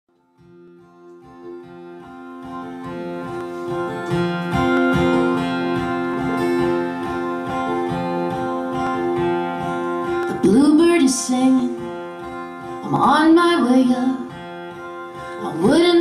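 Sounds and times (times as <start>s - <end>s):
acoustic guitar playing: 0.1s - 16.0s.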